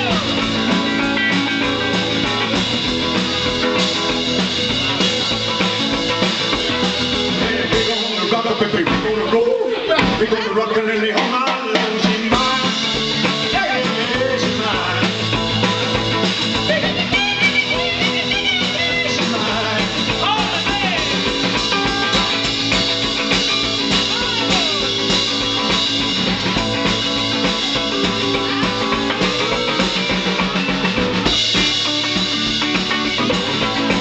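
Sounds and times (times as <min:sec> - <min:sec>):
electric guitar lead with bends: 0:00.0 - 0:10.7, 0:12.0 - 0:34.0
drum kit steady beat: 0:00.0 - 0:34.0.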